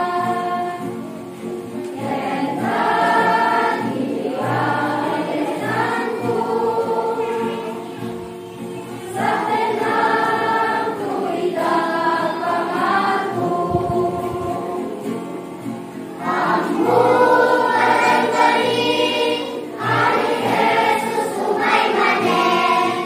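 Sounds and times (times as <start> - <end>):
children's choir singing a hymn: 0.0 - 23.0.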